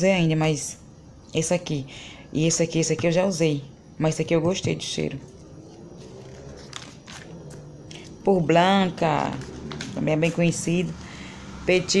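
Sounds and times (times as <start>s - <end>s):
paper page rustling: 5.6s - 8.1s.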